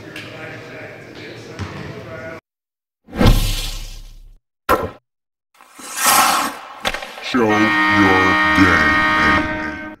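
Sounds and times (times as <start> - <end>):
held musical chord: 7.5 - 10.0.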